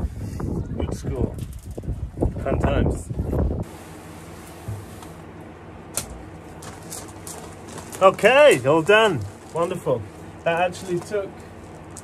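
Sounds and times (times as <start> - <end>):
ballast mains hum: 0.5 - 12.0.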